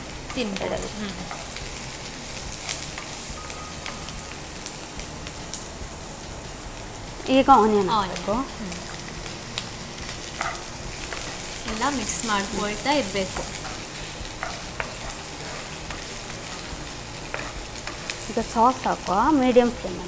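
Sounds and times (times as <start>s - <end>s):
vegetables sizzling in a pan: 0.0s - 20.0s.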